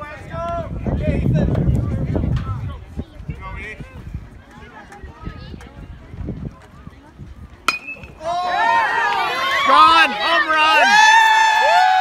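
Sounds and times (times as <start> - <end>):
metal bat ping: 7.7 - 8.2
spectators yelling and cheering: 8.0 - 12.0.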